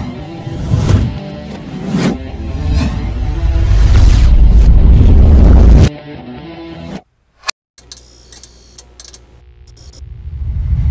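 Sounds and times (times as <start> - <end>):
low hum: 9.3 - 10.9.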